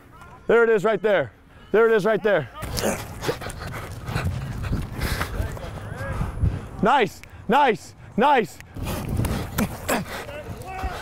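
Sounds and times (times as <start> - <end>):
distant shouting voices: 0.0 - 4.4, 9.7 - 11.0.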